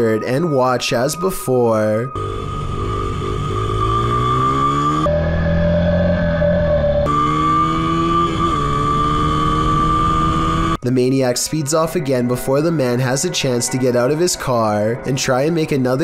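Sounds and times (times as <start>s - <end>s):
steady high tone: 0.0s - 9.6s, 10.9s - 16.0s
dirt bike engine accelerating: 2.2s - 10.8s.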